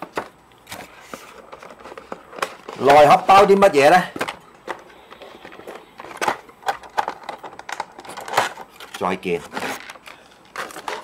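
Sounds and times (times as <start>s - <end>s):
cardboard and plastic taps and rustles: 0.0s - 11.0s.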